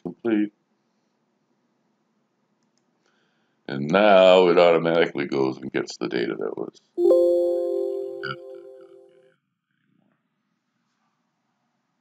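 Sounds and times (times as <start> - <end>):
computer alert chime: 7.0 - 9.1.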